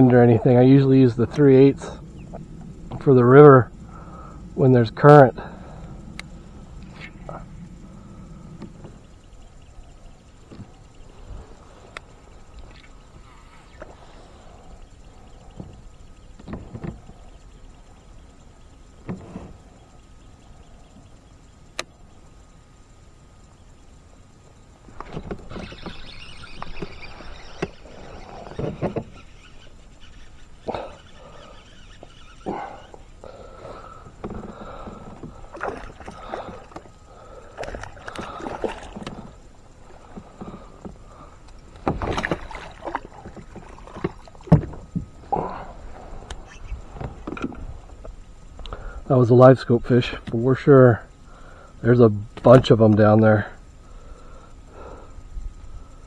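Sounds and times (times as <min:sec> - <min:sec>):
isolated clicks: 0:21.7 - 0:22.0
water splashing: 0:34.3 - 0:40.7, 0:41.6 - 0:46.2
knocks against kayak hull: 0:41.8 - 0:45.1.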